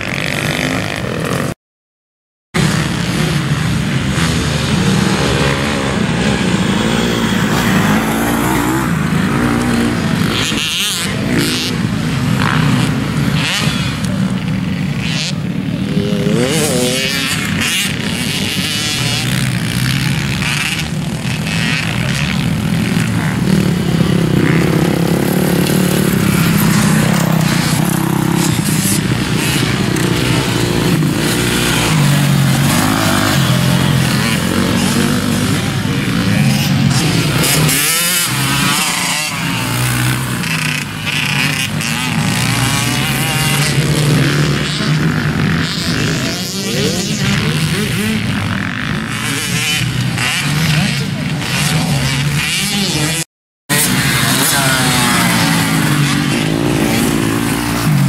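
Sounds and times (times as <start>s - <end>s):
motocross bike engines revving: 0.0s - 1.6s, 2.6s - 58.0s.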